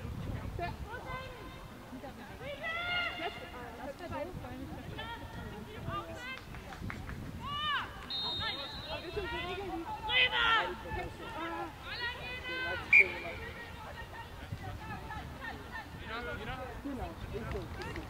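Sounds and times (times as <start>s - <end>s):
voices shouting short calls: 7.4s - 14.4s.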